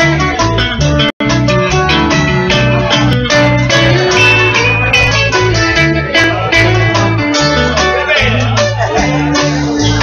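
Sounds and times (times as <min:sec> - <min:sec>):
bass notes: 0:00.0 - 0:10.0
plucked guitar notes: 0:00.0 - 0:10.0
drum hits: 0:01.3 - 0:07.0.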